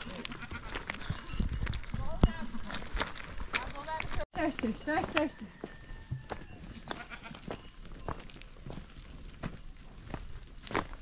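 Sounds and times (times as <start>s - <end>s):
goats bleating: 0.0s - 0.8s, 6.8s - 7.5s
footsteps on loose stones: 0.0s - 11.0s
hooves clattering on stones: 0.0s - 11.0s.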